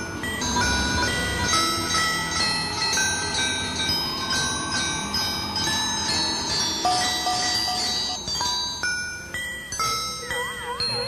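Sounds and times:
high ringing chime tones: 0:00.0 - 0:11.0.

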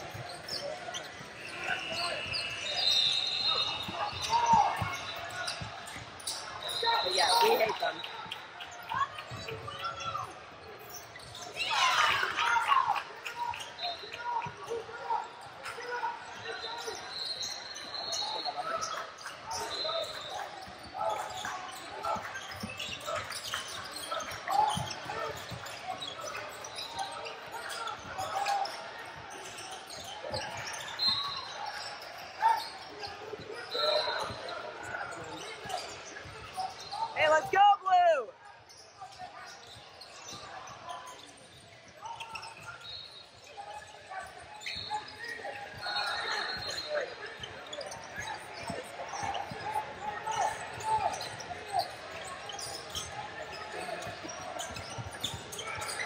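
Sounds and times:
echoing indistinct voices: 0:36.9 - 0:38.3.

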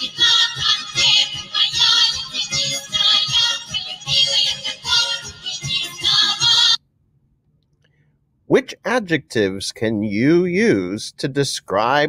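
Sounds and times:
women's folk choir singing: 0:00.0 - 0:06.8.

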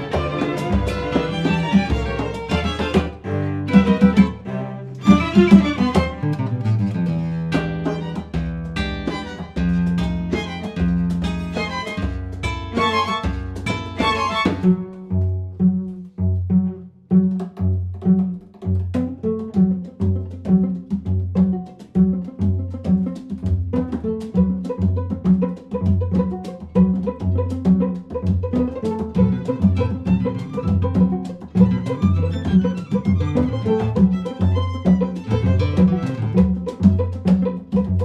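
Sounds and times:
jazz samba with guitar and strings: 0:00.0 - 0:38.0.

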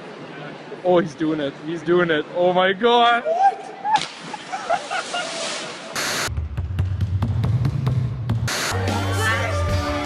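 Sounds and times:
tv static hiss: 0:06.0 - 0:06.3.

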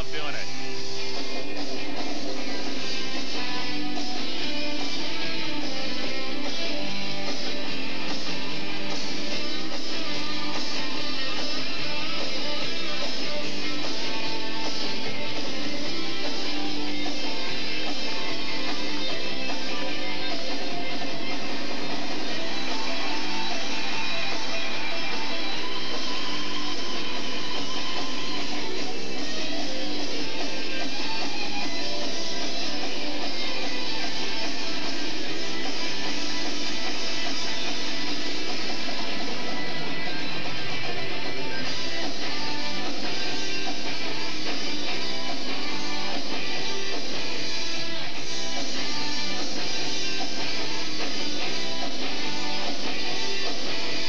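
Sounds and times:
guitar music with strumming: 0:00.0 - 0:54.0.

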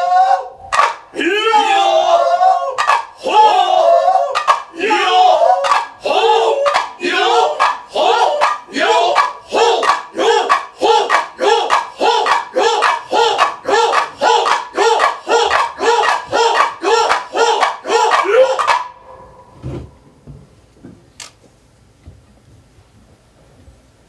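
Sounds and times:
group shouting rhythmic calls: 0:00.0 - 0:19.5.

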